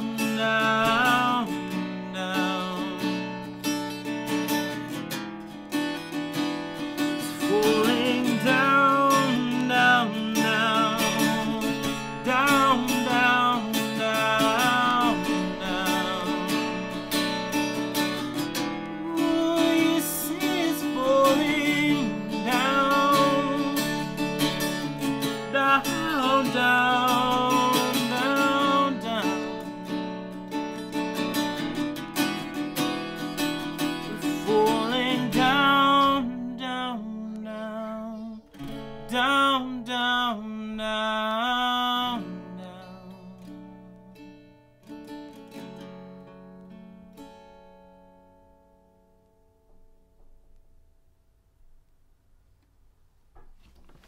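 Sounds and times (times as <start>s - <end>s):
man singing: 0.0s - 3.6s, 7.0s - 30.0s, 33.7s - 43.8s
strummed acoustic guitar: 0.0s - 50.9s.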